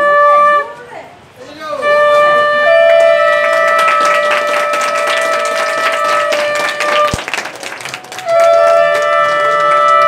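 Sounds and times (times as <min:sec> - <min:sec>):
conch shells blown in held notes: 0:00.0 - 0:00.8, 0:01.8 - 0:07.3, 0:08.2 - 0:10.0
sharp claps or clatter: 0:02.8 - 0:10.0.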